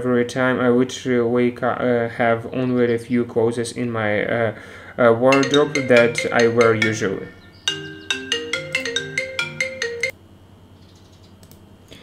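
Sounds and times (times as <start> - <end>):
marimba-like ringtone melody: 5.3 - 10.1.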